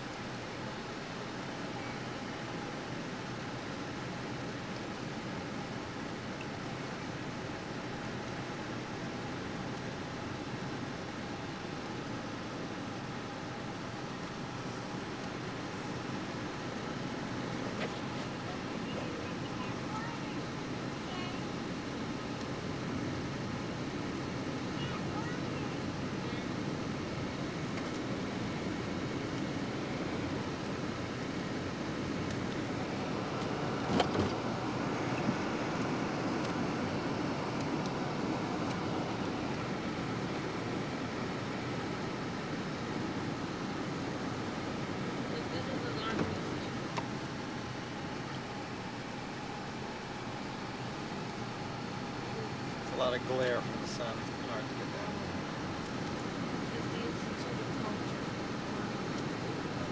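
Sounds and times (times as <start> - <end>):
car road and engine noise: 0.0 - 59.9.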